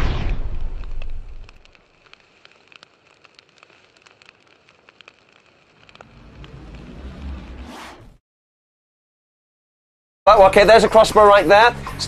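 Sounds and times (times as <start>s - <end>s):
boom: 0.0s - 1.6s
fire crackling with pops: 0.0s - 7.7s
low rumble: 5.2s - 8.2s.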